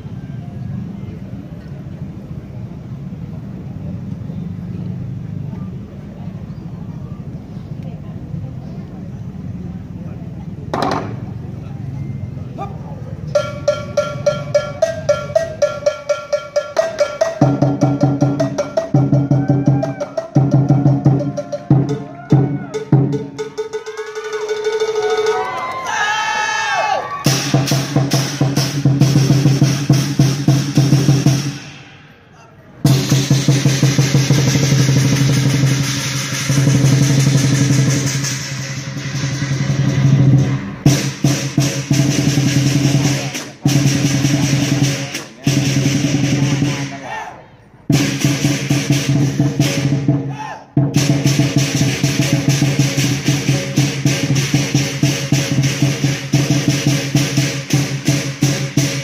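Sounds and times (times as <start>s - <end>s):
cymbals clashing: 13.3s - 25.5s, 27.2s - 47.1s, 47.9s - 50.4s, 51.0s - 59.0s
drum beaten in fast rolls: 13.3s - 25.7s, 27.2s - 32.2s, 32.8s - 47.1s, 47.9s - 59.0s
gong: 13.4s - 19.2s.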